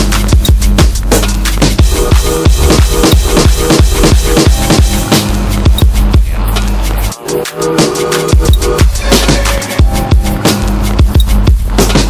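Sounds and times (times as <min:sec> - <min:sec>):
sharp electronic drum hits: 0:01.8 - 0:06.0.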